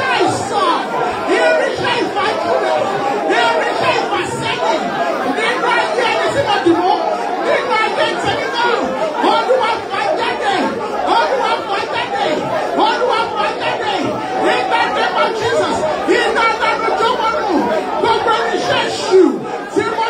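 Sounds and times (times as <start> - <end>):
congregation praying aloud: 0.0 - 20.0.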